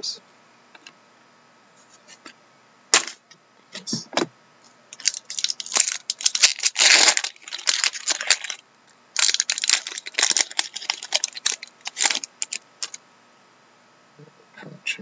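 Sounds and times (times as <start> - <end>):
card packaging crinkling and tearing: 5.0 - 8.6, 9.2 - 13.0.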